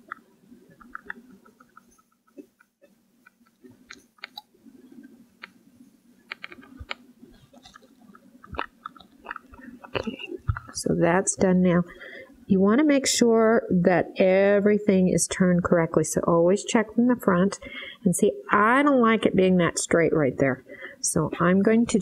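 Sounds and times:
faint clicks and taps: 0.0s - 5.6s, 6.3s - 10.8s.

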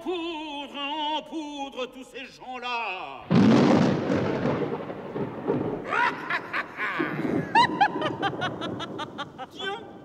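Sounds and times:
thunder rumbling: 3.3s - 10.0s.

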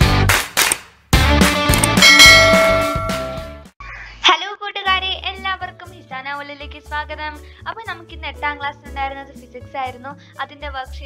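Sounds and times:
notification bell chime: 2.0s - 3.5s.

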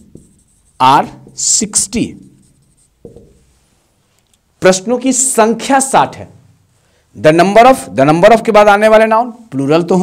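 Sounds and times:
marker writing on whiteboard: 0.0s - 3.5s
man speaking: 0.8s - 2.4s, 4.6s - 6.4s.

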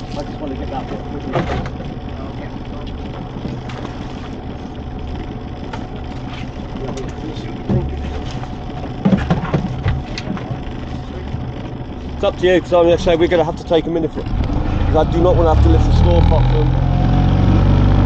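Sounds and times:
knocks and clatters: 0.0s - 2.0s, 5.6s - 11.7s
outboard motor idling: 0.0s - 18.0s.

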